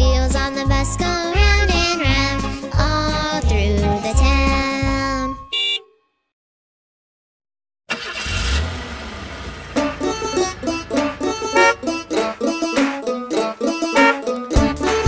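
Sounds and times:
upbeat children's instrumental tune: 0.0s - 5.6s, 9.8s - 15.0s.

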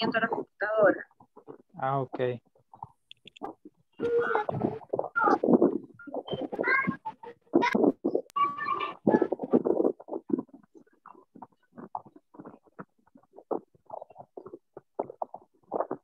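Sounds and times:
choppy distorted voice over call: 0.0s - 10.7s.

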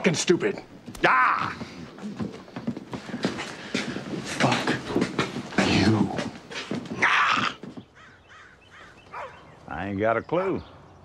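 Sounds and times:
men breathing and grunting: 0.7s - 7.8s.

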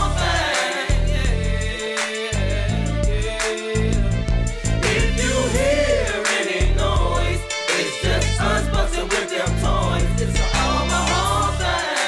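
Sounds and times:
hip hop beat with heavy bass: 0.0s - 12.0s.

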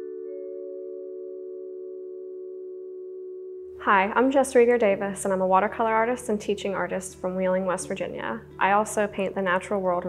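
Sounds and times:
held chord of steady tones: 0.0s - 4.4s.

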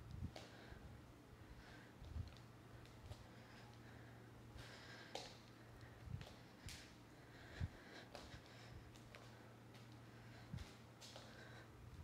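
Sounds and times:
faint breaths: 0.0s - 12.0s
low steady hum: 0.0s - 12.0s.

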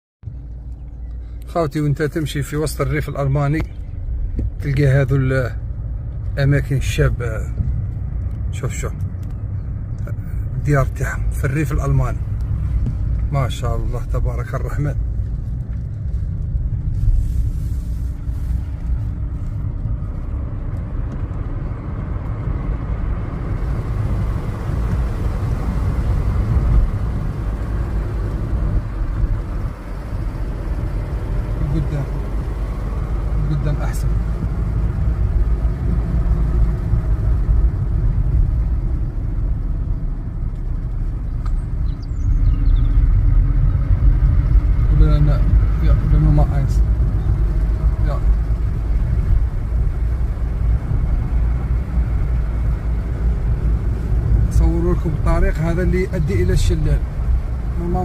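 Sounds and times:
car interior road rumble: 0.2s - 58.0s.

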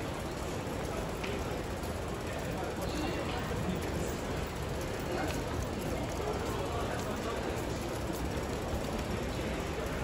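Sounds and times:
hubbub of mall hall: 0.0s - 10.0s.

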